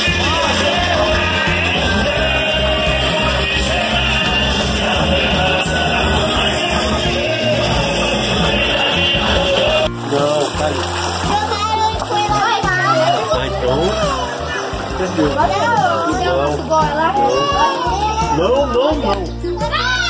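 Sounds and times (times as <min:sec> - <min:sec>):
splashing in a pool: 0:00.0 - 0:18.4
loud music: 0:00.0 - 0:20.0
children shouting: 0:11.4 - 0:15.0, 0:17.0 - 0:18.8, 0:19.6 - 0:20.0.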